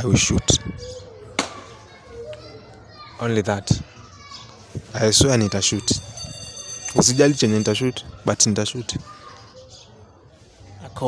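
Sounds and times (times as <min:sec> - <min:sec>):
children playing: 0:00.0 - 0:11.0.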